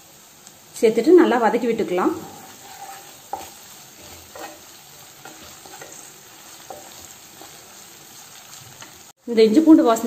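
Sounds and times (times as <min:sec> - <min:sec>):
vegetables sizzling in oil: 0:00.0 - 0:10.0
wooden spatula scraping pan: 0:02.1 - 0:09.0.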